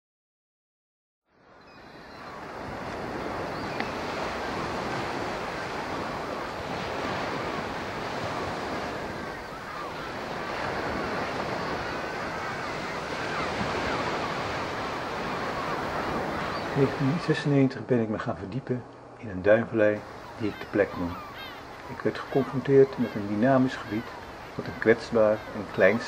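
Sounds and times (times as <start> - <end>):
wind over water: 1.4 - 17.4
sea waves: 1.4 - 26.0.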